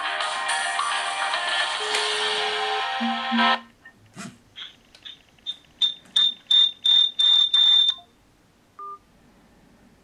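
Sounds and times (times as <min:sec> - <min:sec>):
phone ringing beeps: 0:04.6 - 0:08.1, 0:08.8 - 0:09.0.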